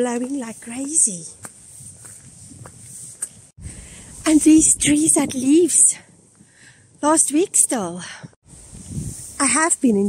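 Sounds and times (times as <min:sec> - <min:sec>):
footsteps on asphalt: 0:00.0 - 0:03.5.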